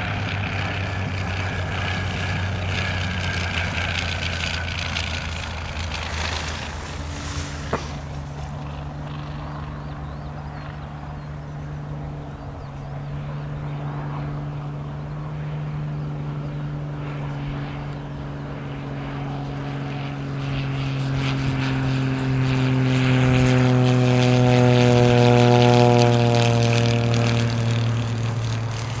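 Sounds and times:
propeller plane engine droning: 0.0s - 29.0s.

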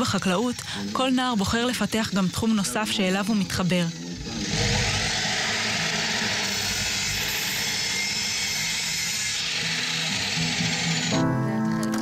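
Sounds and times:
saw blade whining through wood: 0.0s - 11.4s.

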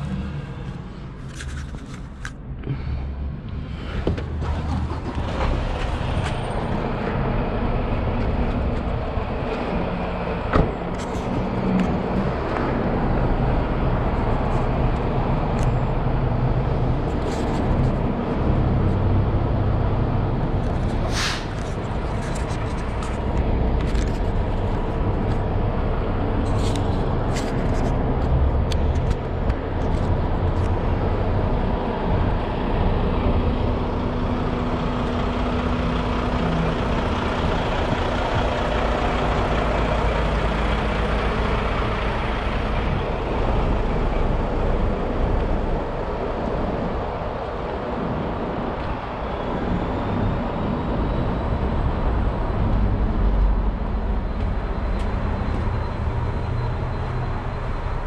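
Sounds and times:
vehicle engine idling: 2.4s - 58.0s.

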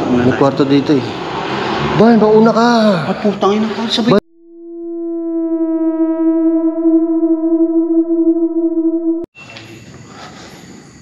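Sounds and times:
synthesizer drone: 4.2s - 9.3s.

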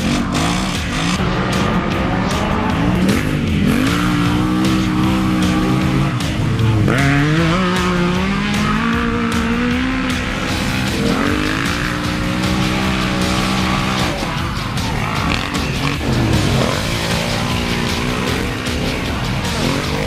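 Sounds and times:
off-road engines revving: 0.0s - 20.0s.

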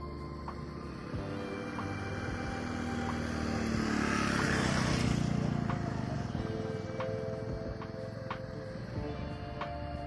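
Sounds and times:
motor vehicle passing by: 0.0s - 10.0s.

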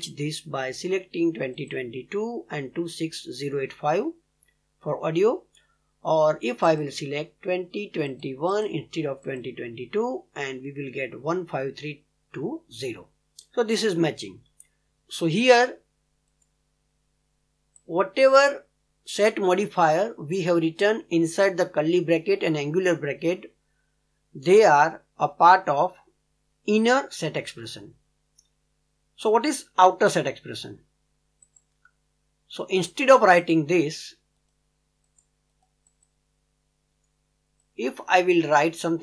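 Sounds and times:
faint computer mouse click: 31.4s - 32.0s, 34.4s - 36.2s.

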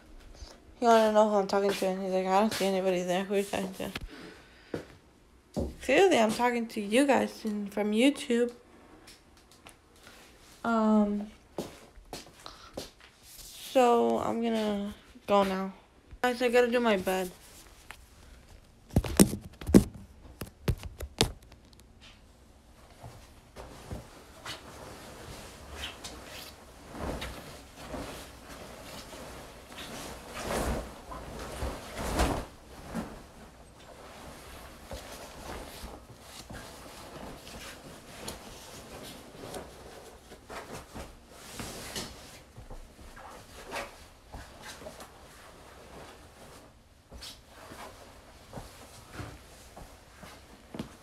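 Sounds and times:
bedding rustling: 0.0s - 4.9s, 9.9s - 51.0s.

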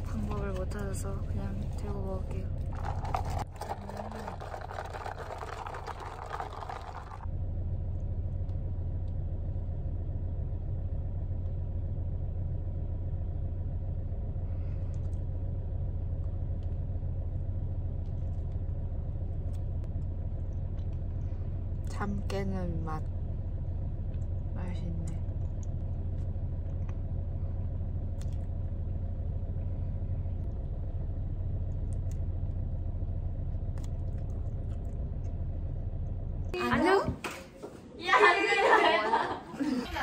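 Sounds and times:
vehicle cabin rumble: 0.0s - 37.6s.

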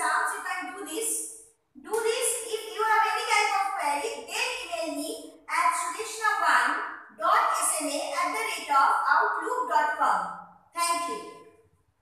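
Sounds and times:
woman speaking: 0.0s - 1.2s, 1.8s - 11.4s.

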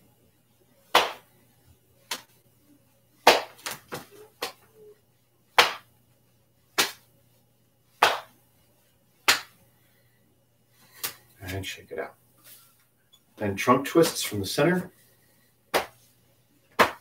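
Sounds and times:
hands slapping body: 0.9s - 1.3s, 2.1s - 2.3s, 3.2s - 4.6s, 5.6s - 5.9s, 6.8s - 7.1s, 8.0s - 8.4s, 9.3s - 9.6s, 11.0s - 11.2s, 15.7s - 16.0s, 16.7s - 17.0s.

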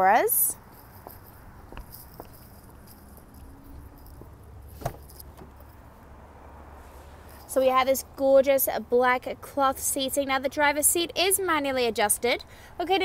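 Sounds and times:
keys jangling: 0.6s - 5.8s
car door opening click: 4.7s - 5.6s.

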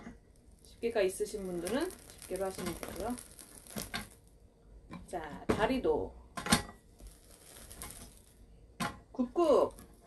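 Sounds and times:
faint rustling: 0.3s - 4.4s, 6.9s - 8.6s.

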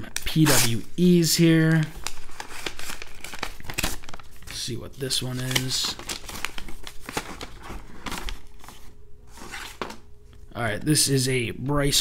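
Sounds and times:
paper rustling and crinkling: 0.0s - 10.1s.

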